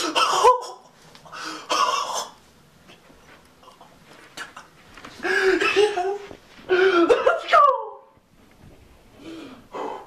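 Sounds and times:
person laughing and gasping: 4.4 - 7.5.

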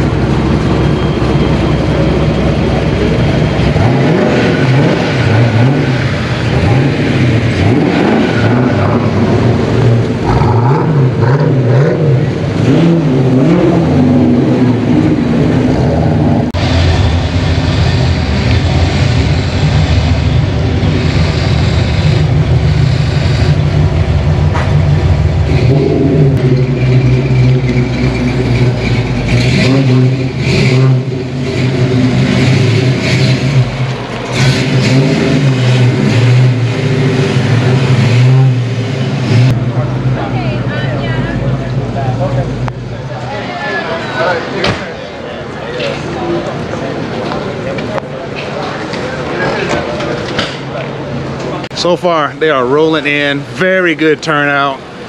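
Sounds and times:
car engines revving: 0.0 - 55.0
car engines rumbling: 0.0 - 55.0.

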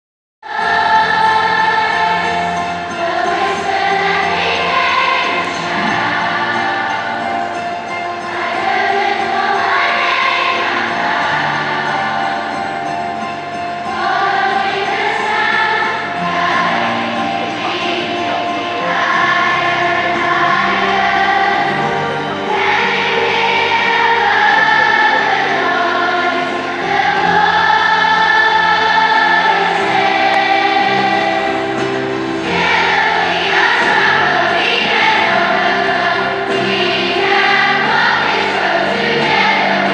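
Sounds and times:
massed children's choir singing: 0.4 - 39.9
musical accompaniment: 0.4 - 39.9.

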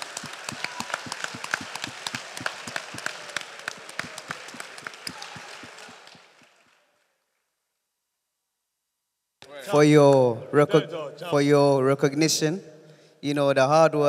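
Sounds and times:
applause: 0.0 - 7.5.

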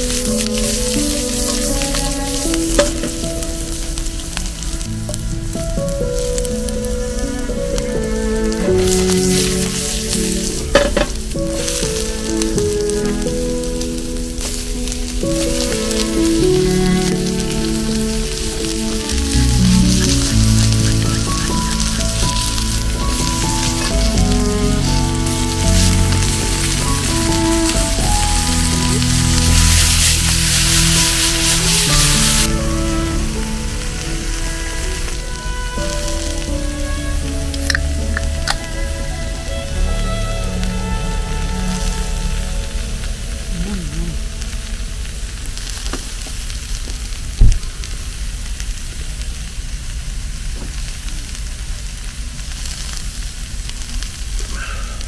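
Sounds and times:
instrumental background music: 0.0 - 45.6
vegetables sizzling in oil: 0.0 - 55.0
pan tossed and stirred: 2.7 - 3.3, 8.8 - 11.8.

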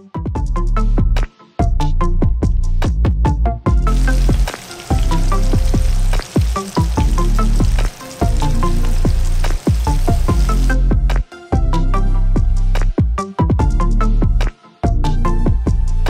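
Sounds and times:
electronic music with beat: 3.5 - 16.0
chicken deep-frying in oil: 3.8 - 10.8.

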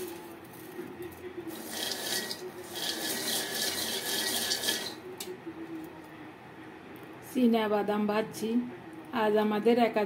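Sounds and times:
nuts rattling in metal pot: 1.5 - 5.0.

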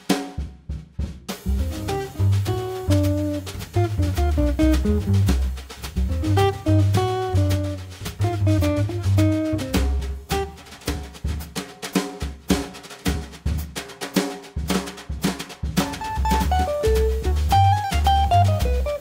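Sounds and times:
drum kit played with brushes: 0.0 - 19.0
upright bass: 1.3 - 11.5, 15.6 - 19.0
acoustic guitar: 15.9 - 19.0.

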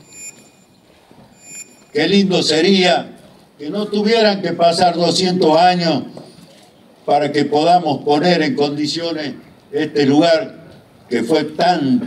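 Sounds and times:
faint high-pitched tones: 0.0 - 2.2
man speaking amplified: 2.0 - 6.1, 7.1 - 12.0.

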